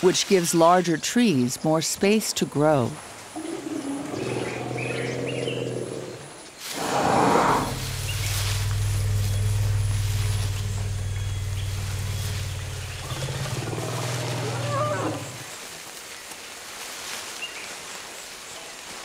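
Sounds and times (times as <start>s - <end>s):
elephants rumbling: 3.2s - 15.7s
elephant roar: 3.4s - 15.5s.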